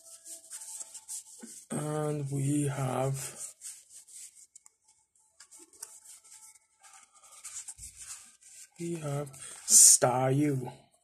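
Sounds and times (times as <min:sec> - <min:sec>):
cardboard cards rustling: 0:00.0 - 0:01.8, 0:03.3 - 0:09.8.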